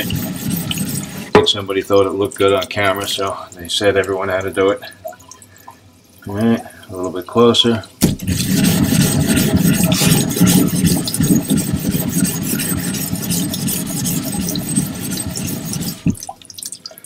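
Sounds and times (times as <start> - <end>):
stone scraping on lapping plate: 0.0 - 1.3, 8.0 - 16.3
running water: 0.0 - 17.0.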